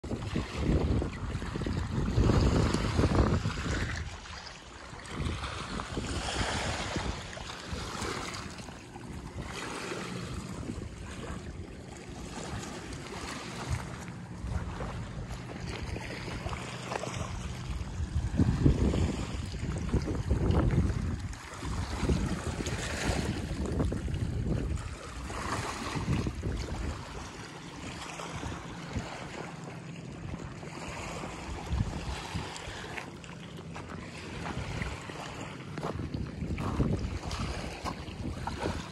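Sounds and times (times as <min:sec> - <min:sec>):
wind buffeting microphone: 0:00.0 - 0:29.5, 0:30.1 - 0:38.9
waves lapping at shore: 0:00.0 - 0:38.9.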